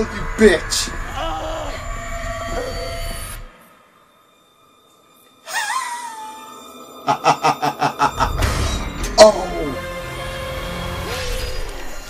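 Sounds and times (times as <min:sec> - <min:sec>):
wavering falling tone: 0:00.0 - 0:09.9
man wailing scream: 0:01.0 - 0:01.9.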